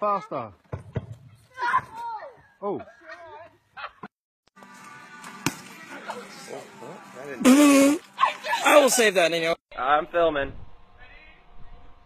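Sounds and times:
outdoor noise: 0:00.0 - 0:12.0.

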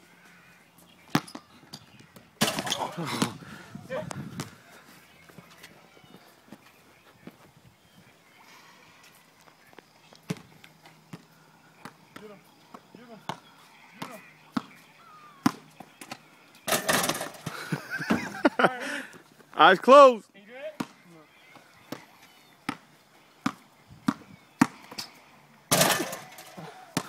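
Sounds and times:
basketball bouncing on concrete: 0:01.1 - 0:01.4, 0:11.1 - 0:13.4, 0:14.0 - 0:14.8, 0:15.4 - 0:15.7, 0:20.8 - 0:21.0, 0:22.7 - 0:24.8
faint voices: 0:02.6 - 0:17.0, 0:20.8 - 0:27.0.

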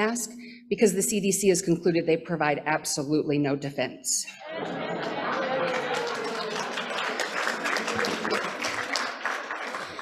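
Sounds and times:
people laughing: 0:04.3 - 0:10.0
people clapping: 0:04.4 - 0:10.0.

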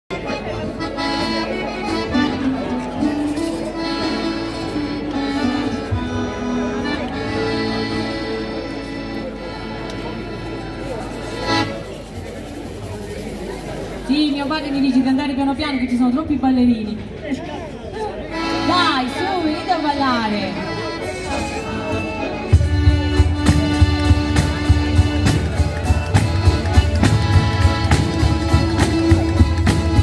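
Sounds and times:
folk music on accordion and guitars: 0:00.1 - 0:16.5, 0:17.4 - 0:30.0.

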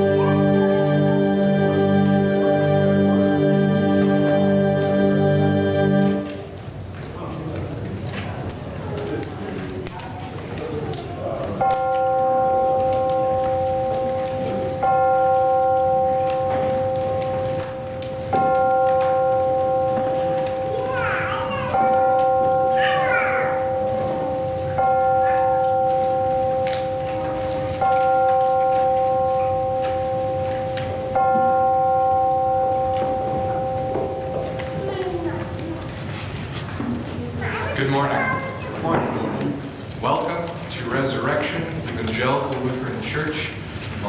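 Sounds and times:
bell tolling: 0:11.6 - 0:35.2.

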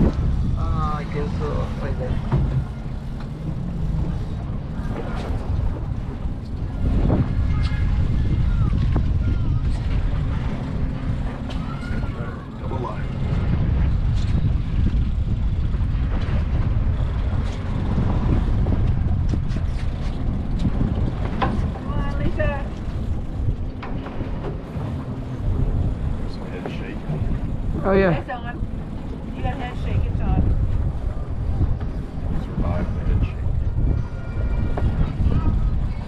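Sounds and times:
boat engine rumbling: 0:00.0 - 0:36.0
wind buffeting microphone: 0:00.0 - 0:36.0
faint voices: 0:04.4 - 0:14.0, 0:29.3 - 0:36.0.

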